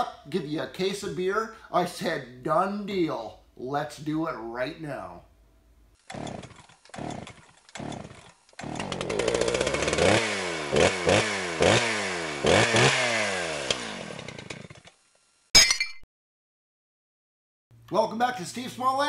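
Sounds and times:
small engine pull-start cranking: 6.0s - 15.0s
small engine revving: 6.0s - 15.0s.

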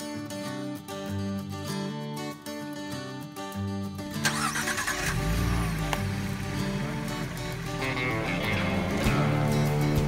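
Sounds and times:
background music: 0.0s - 10.0s
car engine starting and revving: 4.2s - 10.0s.

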